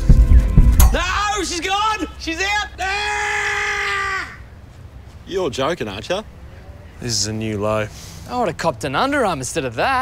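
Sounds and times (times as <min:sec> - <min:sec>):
person yelling: 0:00.9 - 0:04.4.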